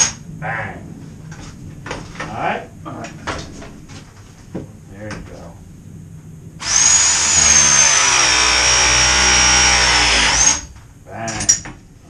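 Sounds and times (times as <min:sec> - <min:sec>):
power press motor whine: 0:06.6 - 0:10.7.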